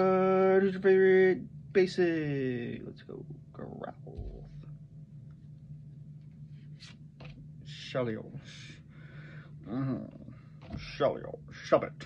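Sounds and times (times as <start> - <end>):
steady low hum: 0.0 - 12.0
cards being shuffled: 6.6 - 7.4.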